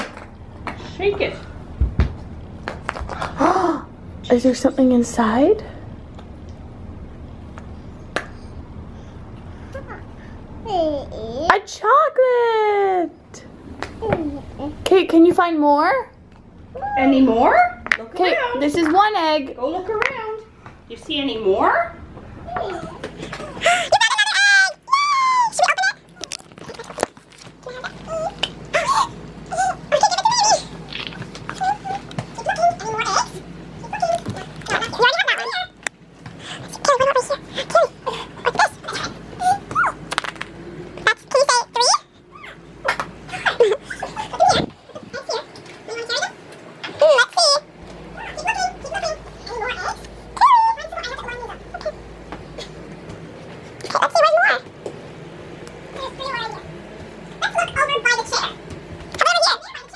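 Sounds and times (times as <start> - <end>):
high-pitched whimpering cries: 22.5 - 26.9, 27.6 - 30.8, 31.5 - 32.1.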